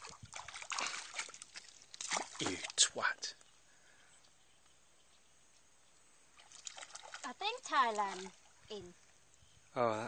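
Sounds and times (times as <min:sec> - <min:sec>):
fish splashing on water: 0:00.0 - 0:02.8, 0:06.4 - 0:08.5.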